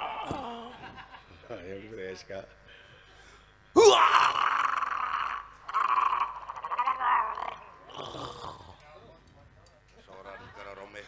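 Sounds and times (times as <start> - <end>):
raspy growling voice: 0.0 - 0.9, 3.8 - 8.9.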